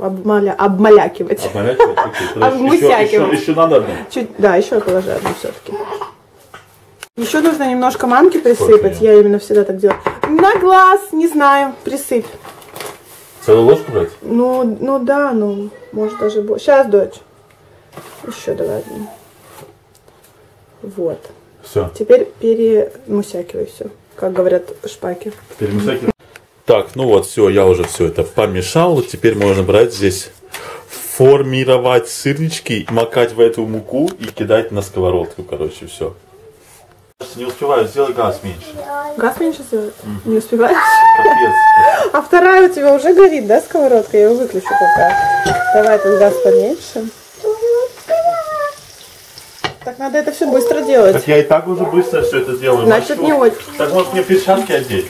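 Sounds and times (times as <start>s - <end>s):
pancakes sizzling in oil: 37.2s - 55.0s.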